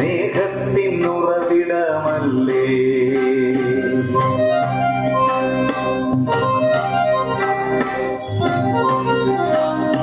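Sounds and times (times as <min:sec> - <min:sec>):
person singing a song: 0:00.0 - 0:04.1
steady musical accompaniment: 0:00.0 - 0:10.0.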